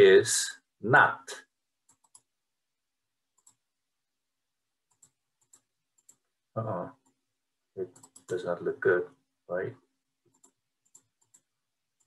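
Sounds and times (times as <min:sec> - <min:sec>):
faint computer mouse clicks: 0:01.9 - 0:02.3, 0:03.4 - 0:03.6, 0:04.9 - 0:06.2, 0:07.9 - 0:08.3, 0:10.3 - 0:11.5.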